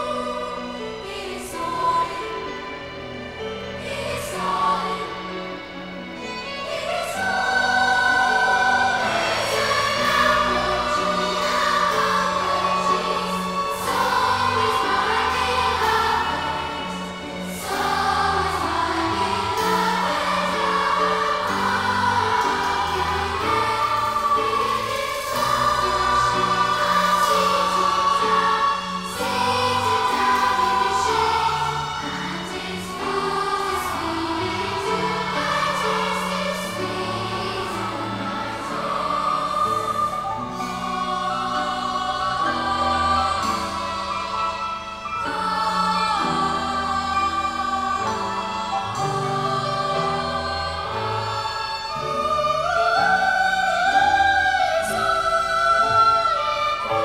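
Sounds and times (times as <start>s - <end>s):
choir singing: 0.0s - 57.0s
orchestral accompaniment: 0.0s - 57.0s.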